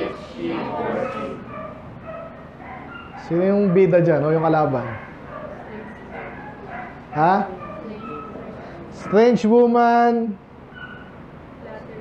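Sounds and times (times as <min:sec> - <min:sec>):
faint murmured voices: 0:00.0 - 0:09.7, 0:10.4 - 0:12.0.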